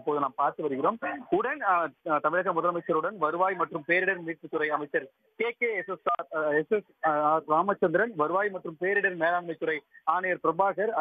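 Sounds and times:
man speaking over telephone: 0.0s - 11.0s.

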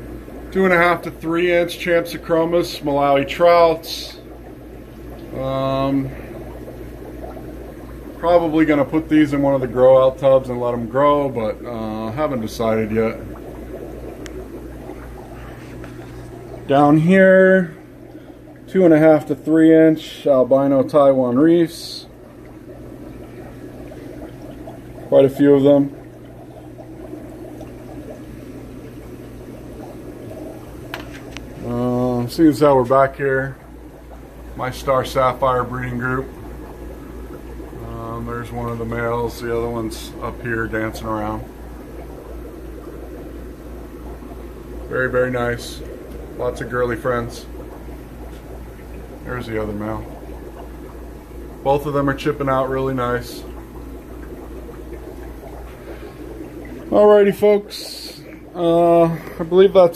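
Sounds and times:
low hum of pumps: 0.0s - 59.9s
water trickling from aquarium filters: 0.0s - 59.9s.

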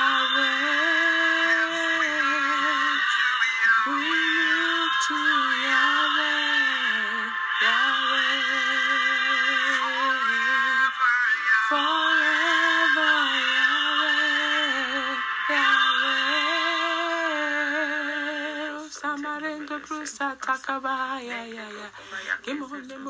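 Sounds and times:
person singing a worship song: 0.0s - 23.0s.

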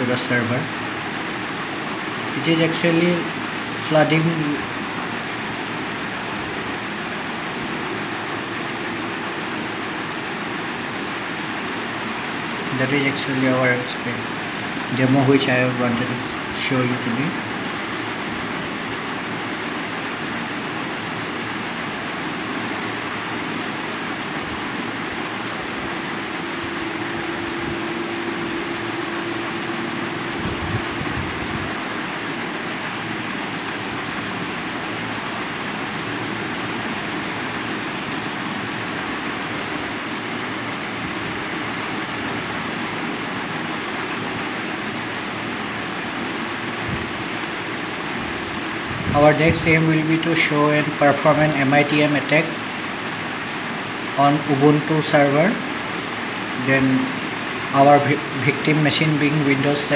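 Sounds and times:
faint hum: 0.0s - 59.9s
fan hissing: 0.0s - 59.9s.

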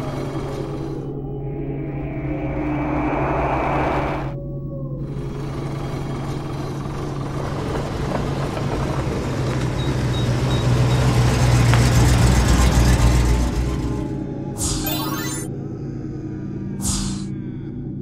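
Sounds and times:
low engine-like rumble: 0.1s - 9.8s.

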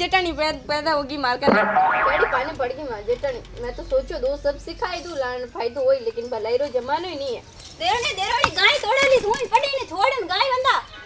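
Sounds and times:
cartoon comedy sound effect: 1.5s - 2.6s.

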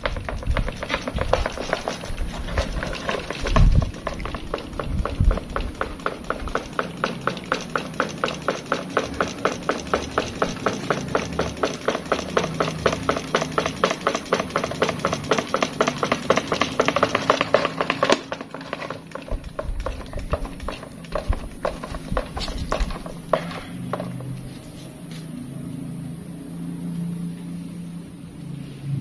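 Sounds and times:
fan blade clacking: 0.0s - 24.4s
low motor hum: 0.0s - 29.0s.

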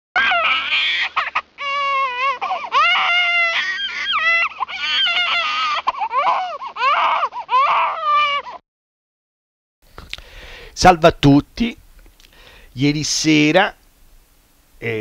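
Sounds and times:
child crying and wailing: 0.2s - 8.6s.

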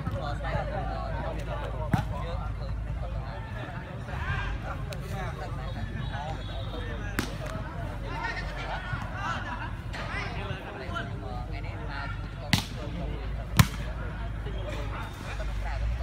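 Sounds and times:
people chattering: 0.0s - 16.0s.

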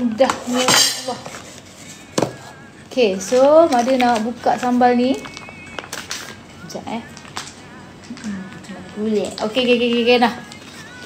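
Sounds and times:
plastic wrapping rustling: 0.5s - 11.0s
plastic crackle: 2.9s - 11.0s.

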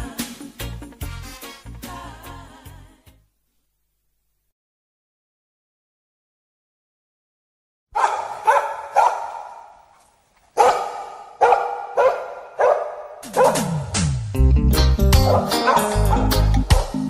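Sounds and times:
reggae band with bass and guitar: 0.0s - 2.8s, 13.2s - 17.0s
dog barking: 7.9s - 9.8s, 10.6s - 13.8s, 15.3s - 16.9s.

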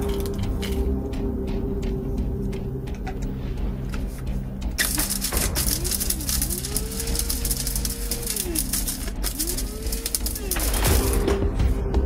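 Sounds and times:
wood pieces clattering in grinder: 4.8s - 11.2s.

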